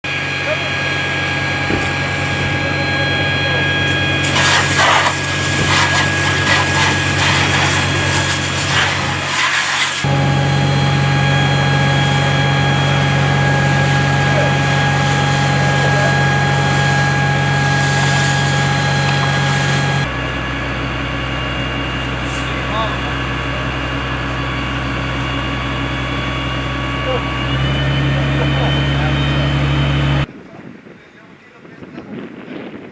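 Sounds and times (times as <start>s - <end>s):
fire engine pump humming: 0.0s - 30.3s
fire hose spray hissing: 4.2s - 10.1s, 16.6s - 20.1s.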